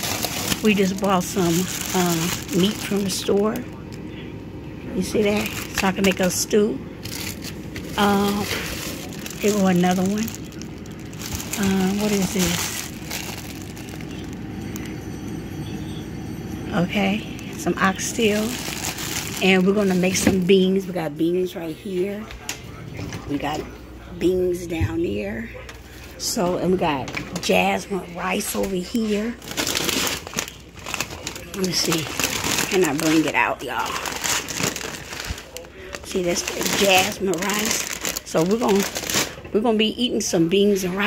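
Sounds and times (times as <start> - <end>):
plastic wrapping crinkle: 0.0 - 4.1, 5.0 - 15.0, 17.1 - 20.7, 28.3 - 39.6
low steady hum: 0.0 - 41.0.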